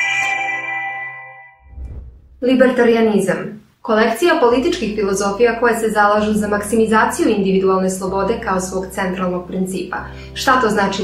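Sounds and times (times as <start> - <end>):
short low rumble: 1.6 - 2.6.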